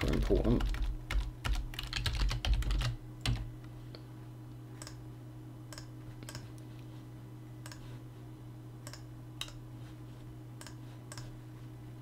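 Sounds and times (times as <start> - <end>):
computer keyboard typing: 0.0 - 3.5
steady low hum: 0.0 - 12.0.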